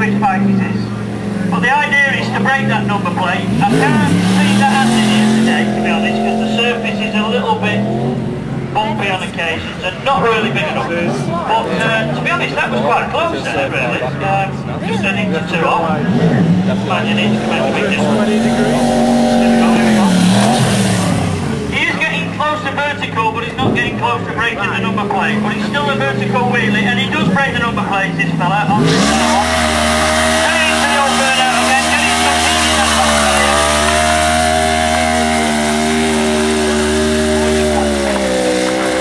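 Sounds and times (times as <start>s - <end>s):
motorcycle engine running: 0.0s - 9.4s, 16.2s - 39.0s
man speaking over public address: 0.0s - 38.3s.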